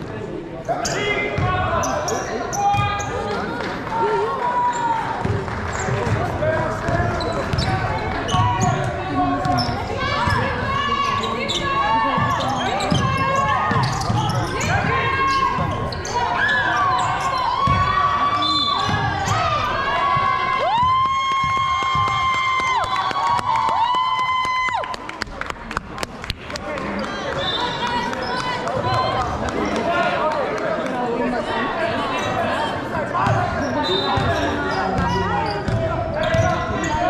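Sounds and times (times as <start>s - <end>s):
voices: 0.6s - 20.9s
sneakers squeaking on court: 4.7s - 19.9s, 32.2s - 37.0s
basketball bouncing: 17.6s - 18.0s, 18.8s - 19.5s, 20.1s - 22.4s.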